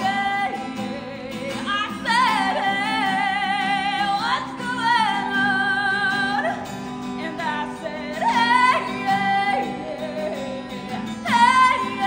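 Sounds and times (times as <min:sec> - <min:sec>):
strummed acoustic guitar: 0:00.0 - 0:12.0
woman singing wordless notes: 0:00.0 - 0:12.0.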